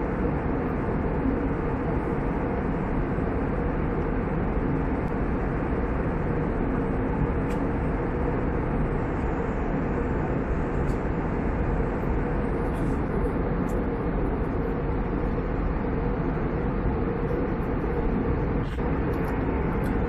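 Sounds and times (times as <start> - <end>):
airliner cabin engine rush: 0.0 - 20.0.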